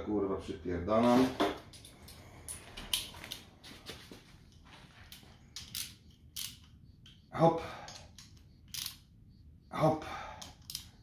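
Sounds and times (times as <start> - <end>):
ratchet clicking: 5.1 - 7.3, 7.9 - 9.1, 10.4 - 11.0.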